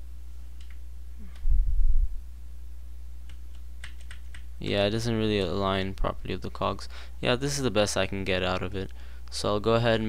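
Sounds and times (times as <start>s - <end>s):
steady low hum: 0.0s - 10.0s
computer mouse and keyboard clicks: 3.2s - 4.5s.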